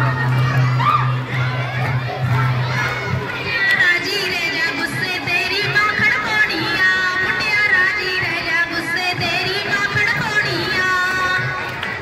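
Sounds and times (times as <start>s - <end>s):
dance song with singing: 0.0s - 12.0s.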